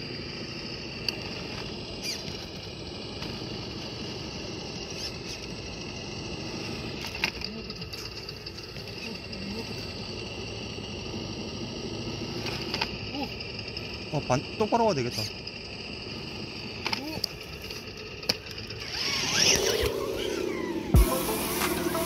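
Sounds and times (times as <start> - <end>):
rc car motor whining: 0.0 - 22.0
tires clicking on rock: 0.0 - 22.0.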